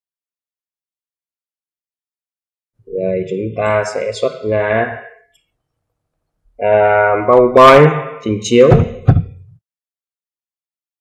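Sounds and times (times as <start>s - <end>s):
person speaking: 2.9s - 5.0s, 6.6s - 9.6s.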